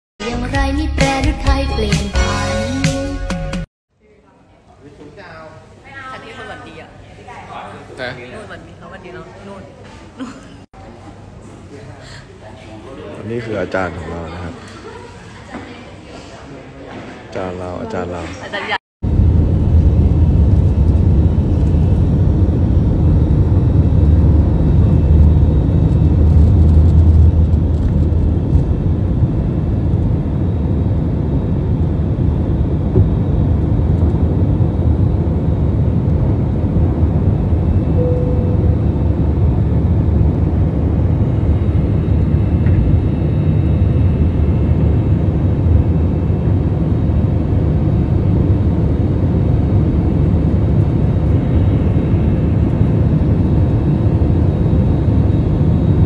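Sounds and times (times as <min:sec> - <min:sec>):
jet engines low rumble: 0:19.0 - 0:56.0.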